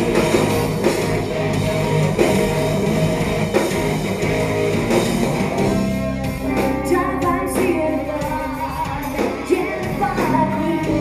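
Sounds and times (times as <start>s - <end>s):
drum kit: 0.0s - 11.0s
electric guitar: 0.0s - 11.0s
live rock band playing: 0.0s - 11.0s.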